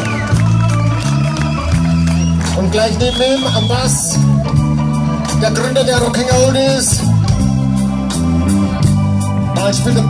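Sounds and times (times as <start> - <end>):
electric bass guitar: 0.0 - 10.0
electric organ chords: 0.0 - 10.0.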